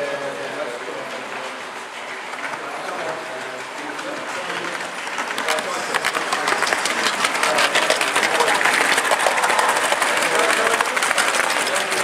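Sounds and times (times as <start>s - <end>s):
model train rumbling on track: 0.0s - 12.0s.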